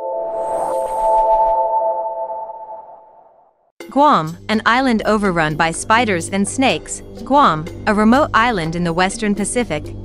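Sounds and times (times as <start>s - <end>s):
airy whoosh: 0.0s - 3.2s.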